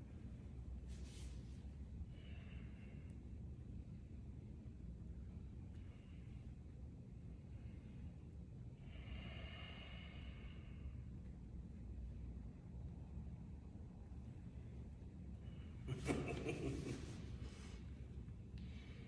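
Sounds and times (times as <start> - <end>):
low room hum: 0.0 - 19.0
people breathing: 2.0 - 3.5, 5.7 - 11.2, 16.8 - 19.0.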